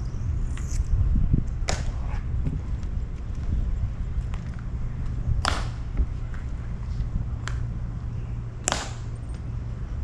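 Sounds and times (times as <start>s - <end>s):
low wind rumble on microphone: 0.0s - 10.0s.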